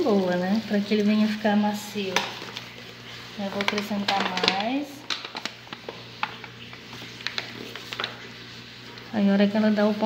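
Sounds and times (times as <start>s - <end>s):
plastic packet rustling: 0.0s - 9.6s
hand mixing dough: 0.0s - 10.0s.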